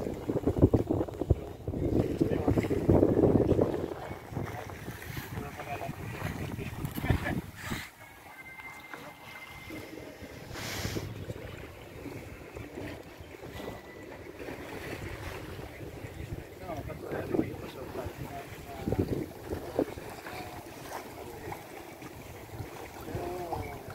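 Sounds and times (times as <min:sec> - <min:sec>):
wind buffeting microphone: 0:00.0 - 0:08.0, 0:09.6 - 0:23.9
water washing along hull: 0:00.0 - 0:23.9.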